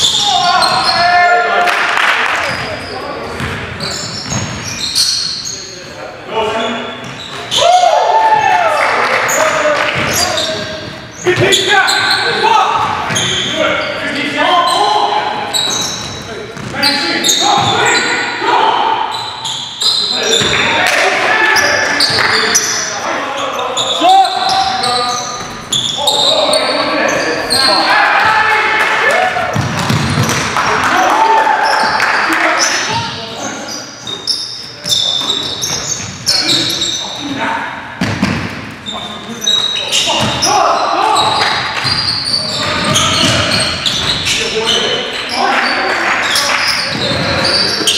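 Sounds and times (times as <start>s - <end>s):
players shouting: 25.9s - 33.2s
basketball bouncing on hardwood floor: 29.5s - 30.5s, 38.0s - 38.5s.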